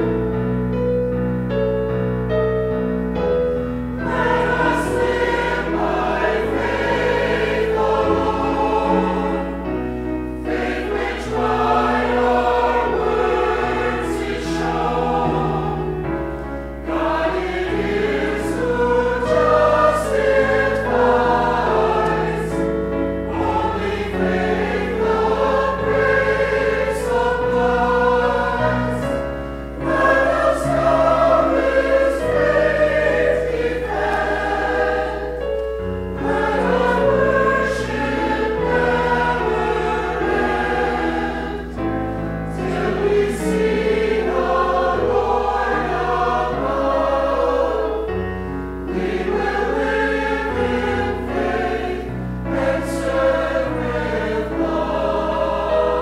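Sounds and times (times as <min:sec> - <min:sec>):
keyboard accompaniment: 0:00.0 - 0:56.0
mixed choir singing: 0:03.3 - 0:56.0.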